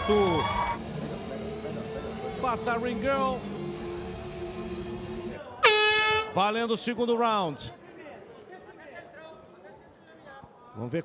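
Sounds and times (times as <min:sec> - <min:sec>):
quiet background music: 0:00.0 - 0:06.3
air horn blast: 0:05.6 - 0:06.4.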